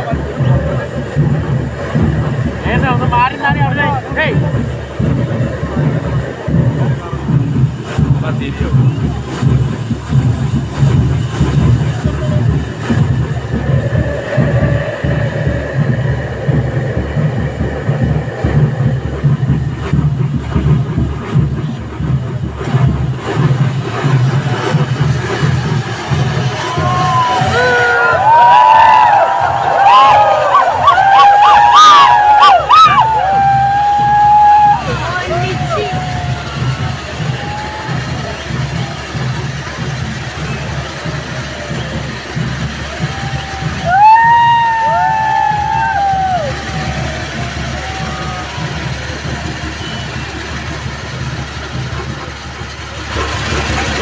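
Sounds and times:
fountain fireworks roaring: 0.0s - 54.0s
low pulsing beat: 0.0s - 54.0s
faint steady whistle: 48.0s - 50.9s.

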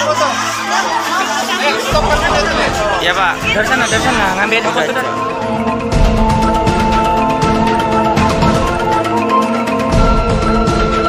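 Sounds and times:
people chattering: 0.0s - 9.1s
background music: 0.0s - 11.0s.

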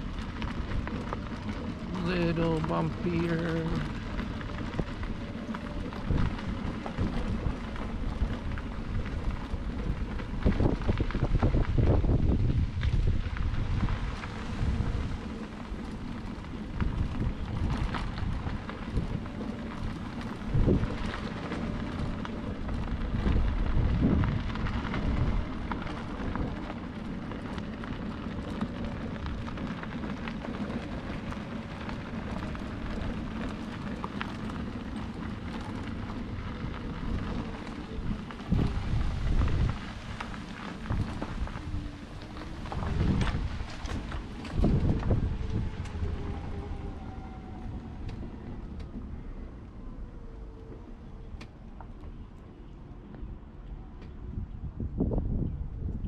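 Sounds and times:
scooter wheels rattling on gravel: 0.0s - 49.5s.

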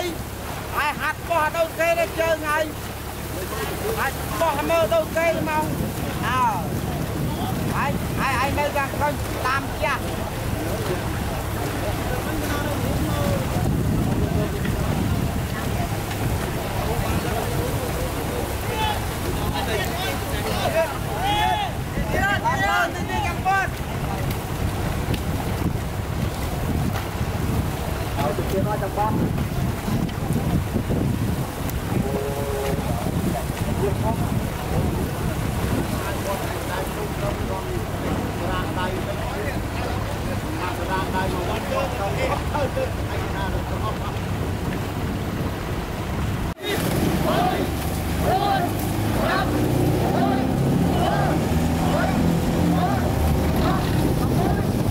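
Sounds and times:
paddles splashing water: 0.0s - 54.9s
wind rumbling on microphone: 0.0s - 54.9s.

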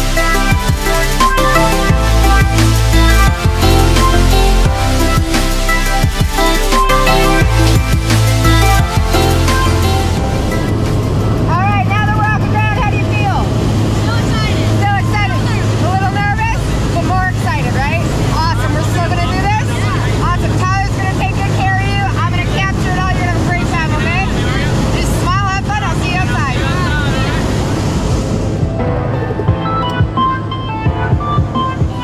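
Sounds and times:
propeller plane engine droning: 0.0s - 32.0s
voices: 11.4s - 27.8s.

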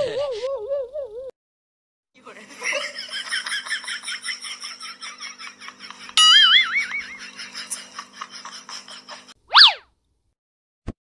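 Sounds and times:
cartoon boing: 6.2s - 6.9s, 9.5s - 9.8s
whistling swoop effect: 9.5s - 9.9s.

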